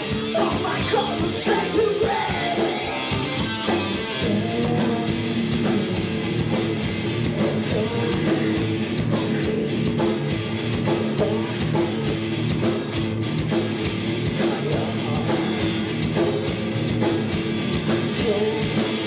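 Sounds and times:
bass guitar: 0.0 - 19.0
drum kit: 0.0 - 19.0
electric guitars: 0.0 - 19.0.

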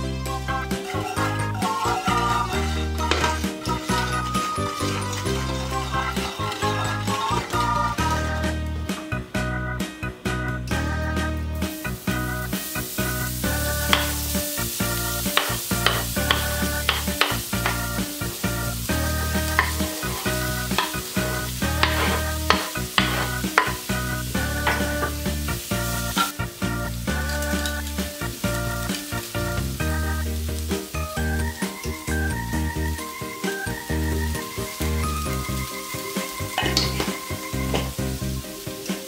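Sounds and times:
food sizzling in a pan: 0.0 - 8.9, 11.1 - 39.0
background music with bass: 0.0 - 39.0
utensil clicking in pan: 13.9 - 14.2, 15.3 - 17.8, 19.5 - 21.0, 21.8 - 23.8.

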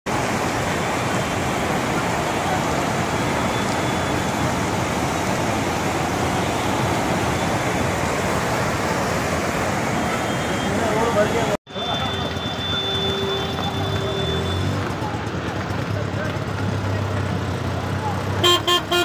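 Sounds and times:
floodwater rushing: 0.1 - 19.0.

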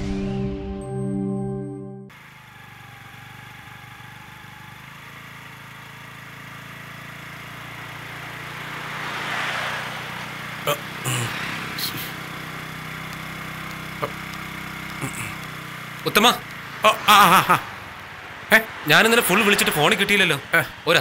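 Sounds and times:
motor scooter engine running: 2.1 - 21.0
sharp clicks: 13.0 - 16.6.

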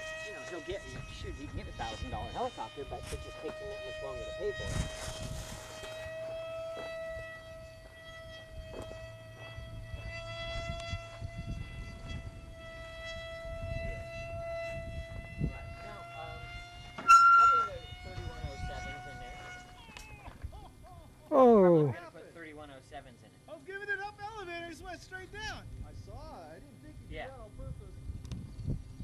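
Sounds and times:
model airplane motor whining: 0.0 - 21.8.

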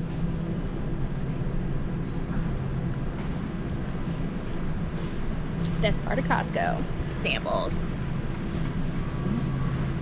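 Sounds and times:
low machinery hum: 0.0 - 10.0.

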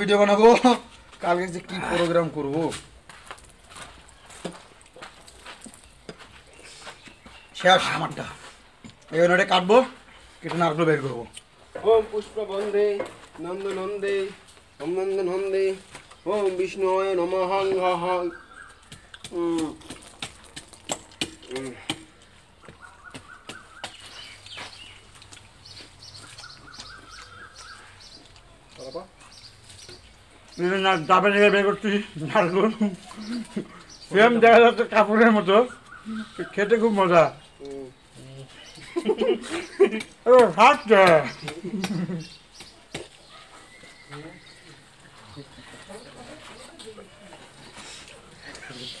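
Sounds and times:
birds singing: 0.0 - 49.0
clicks and crunches of coconut: 18.6 - 30.2, 39.9 - 43.3
swallowing and small clicks: 24.4 - 30.3.

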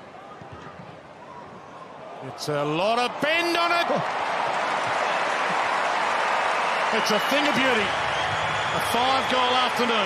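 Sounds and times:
stadium crowd cheering and applauding: 1.9 - 10.0.

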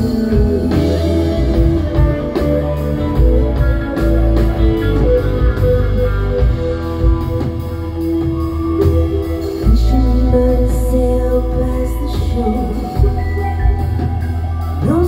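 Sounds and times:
electric guitar notes: 0.0 - 15.0
live band instrumental: 0.0 - 15.0.

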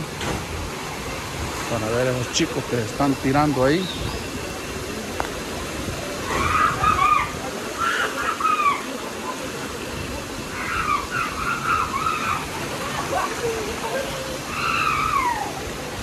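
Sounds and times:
river water rushing: 0.0 - 16.0
distant high voices calling: 6.1 - 9.6, 10.3 - 16.0.

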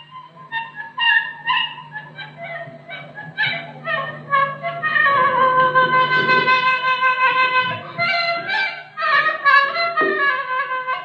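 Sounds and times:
folk melody instrument notes: 0.0 - 11.0
steady low hum: 0.0 - 11.0.

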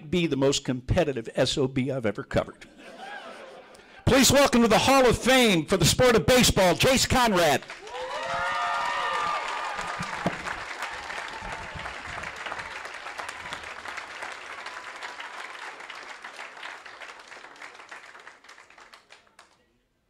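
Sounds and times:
crowd cheering: 2.8 - 5.4, 6.8 - 19.2
audience applauding: 7.4 - 19.6.

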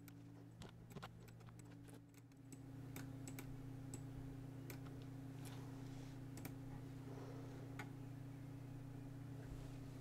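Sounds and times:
keyboard and mouse clicks: 0.0 - 5.1, 6.3 - 6.6
steady low hum: 0.0 - 10.0.

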